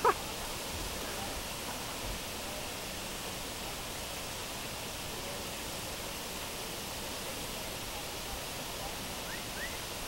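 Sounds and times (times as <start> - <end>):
waterfall pouring into pool: 0.0 - 10.0.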